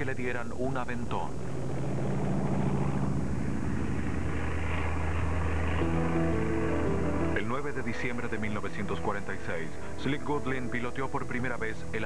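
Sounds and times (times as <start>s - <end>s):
propeller aircraft engines droning: 0.0s - 12.0s
music: 5.7s - 12.0s.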